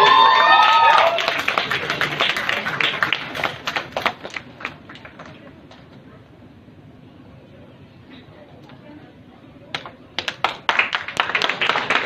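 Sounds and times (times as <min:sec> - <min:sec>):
audience applauding: 0:00.0 - 0:05.5, 0:10.2 - 0:12.0.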